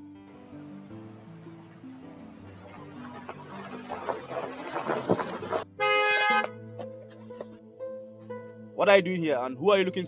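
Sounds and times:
background music: 0.0 - 10.0
tyres crunching over gravel: 2.2 - 6.9
car horn blare: 5.8 - 6.6.

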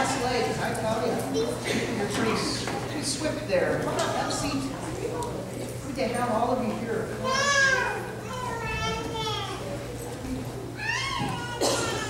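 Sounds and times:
children calling out: 7.2 - 9.9, 10.7 - 12.0.

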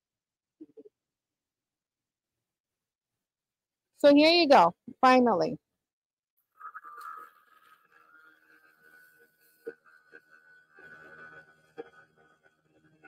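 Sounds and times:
rotary tool high whine: 6.6 - 13.0.

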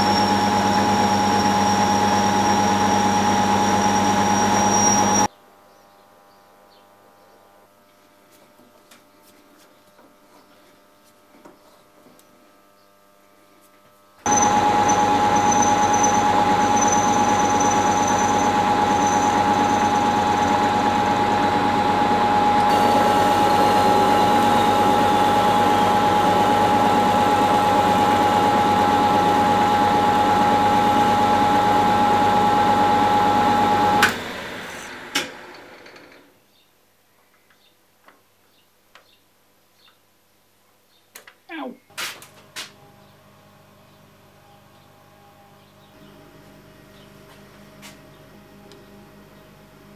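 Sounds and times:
lathe motor whine: 0.0 - 5.3, 14.3 - 36.3.

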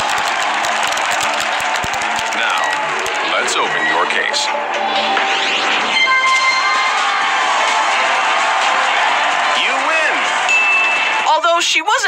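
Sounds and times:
crowd-like cheer: 0.0 - 4.8, 5.6 - 11.4
bright ringing chime: 10.5 - 11.1.

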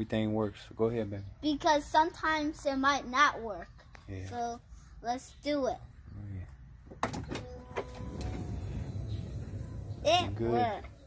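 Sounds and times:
sliding door motor humming: 7.2 - 11.0.

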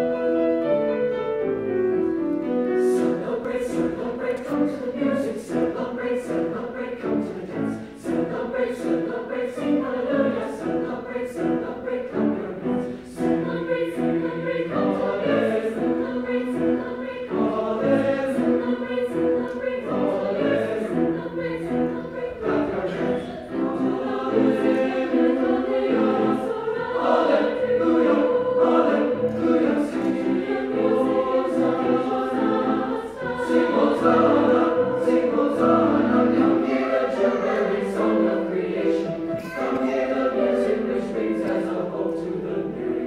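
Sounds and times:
grand piano: 0.0 - 43.0
mixed choir singing in harmony: 0.0 - 43.0.

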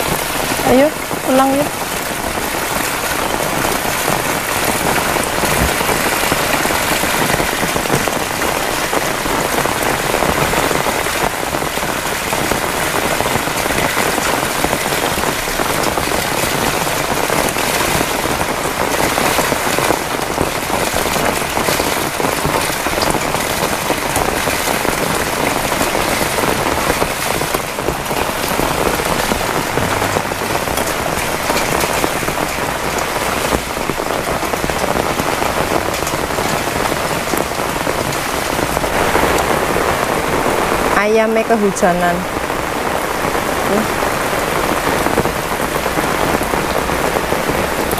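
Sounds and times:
heavy rain pouring: 0.0 - 47.9.

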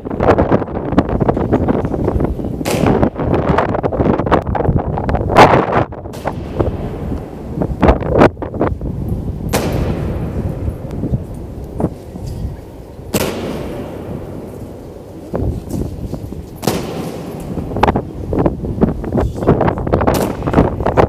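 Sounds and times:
marching boots on stone floor: 0.0 - 21.0.

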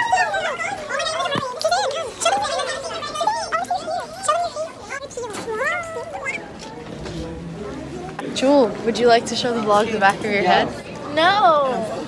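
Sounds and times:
girls' high wordless voices: 0.0 - 6.8.

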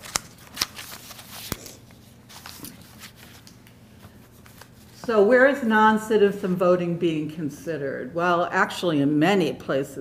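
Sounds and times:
paper rustling: 0.0 - 5.2.

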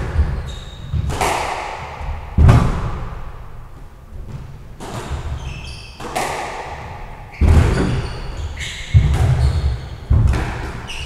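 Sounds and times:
squash ball hitting court walls: 0.0 - 11.0.

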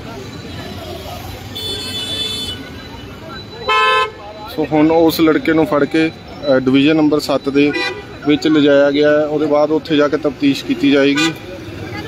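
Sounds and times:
murmur of voices: 0.0 - 12.0
street noise: 0.0 - 12.0
car horns honking: 1.4 - 4.4, 7.5 - 8.3, 10.9 - 11.6.

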